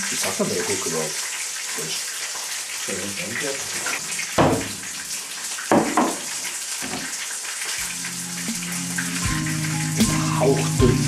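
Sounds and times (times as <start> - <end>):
fish sticks sizzling in a pan: 0.0 - 11.0
sharp kitchen knocks: 3.9 - 4.9, 5.7 - 7.1
background music with low beat: 7.8 - 11.0.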